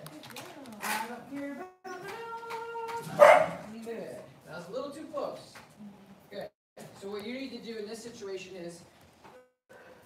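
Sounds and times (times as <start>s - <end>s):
dog barking: 3.1s - 3.7s.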